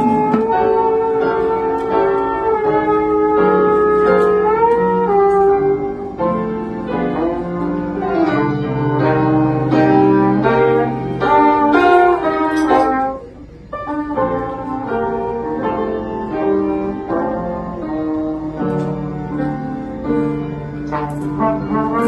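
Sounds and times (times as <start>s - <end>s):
piano accompaniment: 0.0s - 22.0s
trombone melody with slides: 0.0s - 22.0s.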